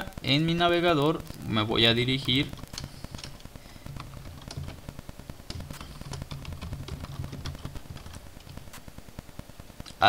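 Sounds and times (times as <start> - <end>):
steady low hum: 0.0 - 10.0
computer keyboard typing: 1.8 - 8.9.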